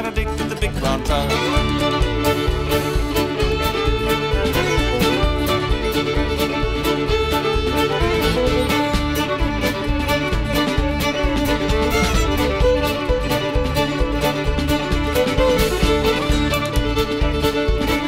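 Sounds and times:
fiddle playing a tune: 0.0 - 18.0
steady beat: 0.0 - 18.0.

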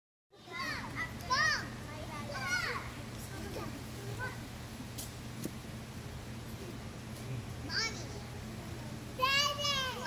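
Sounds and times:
children calling: 0.4 - 4.6, 7.7 - 10.0
steady low hum: 0.4 - 10.0.

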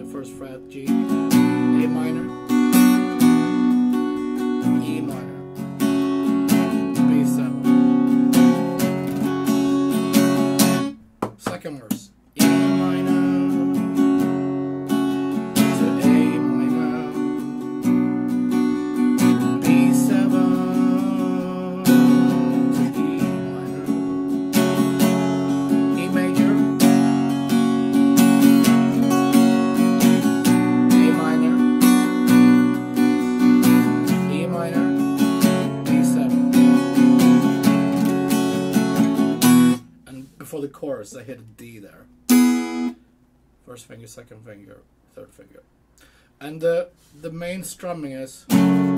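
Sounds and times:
acoustic guitar strumming: 0.0 - 43.2, 47.0 - 48.9.

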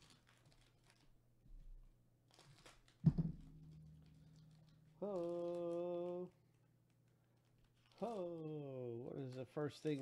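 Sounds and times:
plastic wrapper crinkling and tearing: 0.0 - 10.0.

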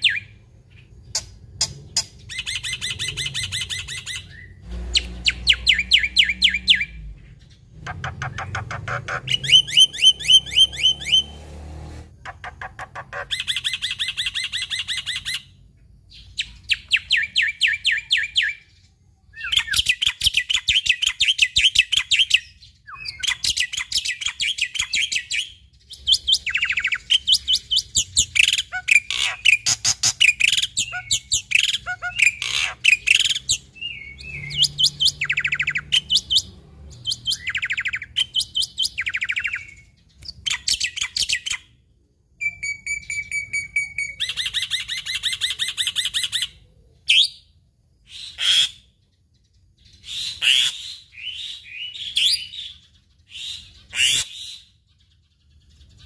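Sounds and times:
starling singing rapid trills: 0.0 - 18.8, 19.4 - 41.8.

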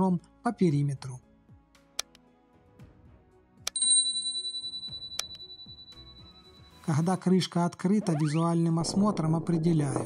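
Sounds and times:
soft background music: 0.0 - 10.0
bell-like ding: 3.7 - 7.1
click sound effect: 4.9 - 6.0.

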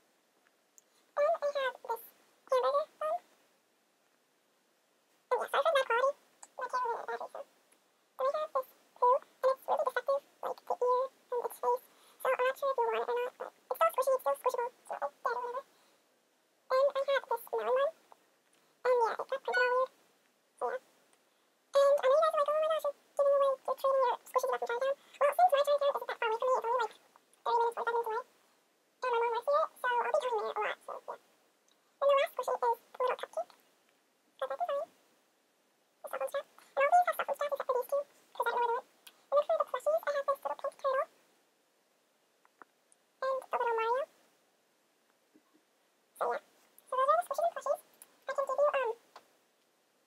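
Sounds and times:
young person talking high-pitched: 1.2 - 3.2, 5.3 - 7.5, 8.2 - 15.7, 16.7 - 18.0, 18.8 - 20.0, 20.6 - 20.8, 21.8 - 28.3, 29.0 - 31.2, 32.0 - 33.5, 34.4 - 34.9, 36.0 - 41.1, 43.2 - 44.1, 46.2 - 49.0
high-pitched garbled voice: 1.2 - 3.3, 5.3 - 7.5, 8.2 - 15.7, 16.7 - 18.1, 18.8 - 20.0, 20.6 - 20.9, 21.8 - 28.3, 29.0 - 31.3, 32.0 - 33.6, 34.4 - 35.0, 36.0 - 41.1, 43.2 - 44.2, 46.2 - 49.0.

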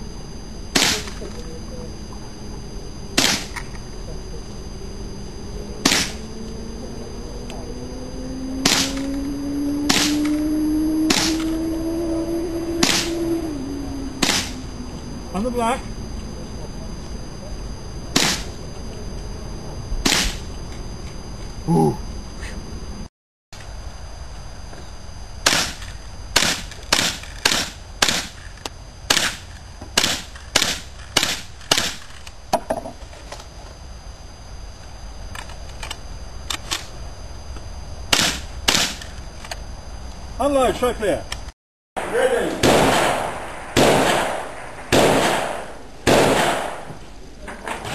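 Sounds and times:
steady hum rising in pitch: 0.0 - 47.6
rifle shots: 0.8 - 1.2, 3.2 - 3.6, 5.8 - 6.2, 8.6 - 9.1, 9.9 - 10.4, 11.1 - 11.5, 12.8 - 13.2, 14.2 - 14.6, 18.1 - 18.6, 20.0 - 20.4, 25.4 - 25.8, 26.4 - 28.4, 29.1 - 32.1, 38.1 - 39.0, 42.0 - 46.9.

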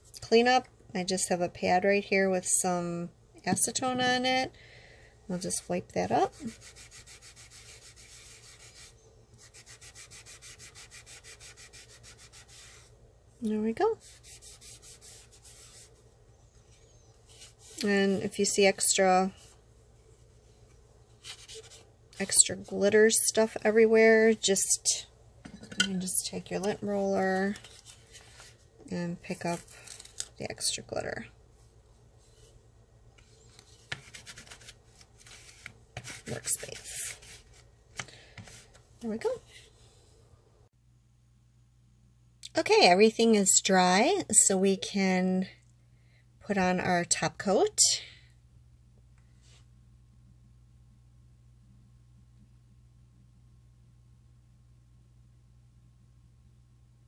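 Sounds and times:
lint roller rubbing on paper: 5.9 - 12.9, 13.8 - 16.0, 16.6 - 19.6, 33.5 - 37.7
pad scrubbing a nail: 6.4 - 12.8.

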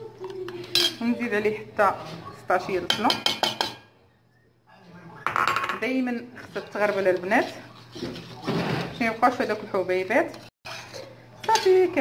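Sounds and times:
metal spoon scraping a pot: 6.4 - 12.0.

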